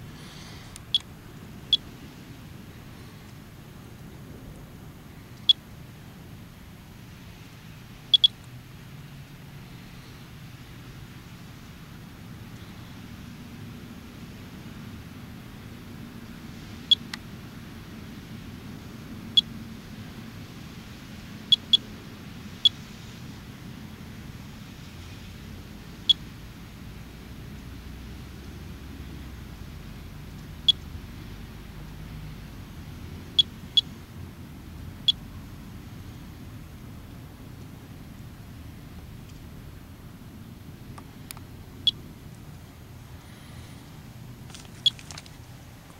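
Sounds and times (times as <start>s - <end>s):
geiger counter beeps: 8.1s - 8.4s.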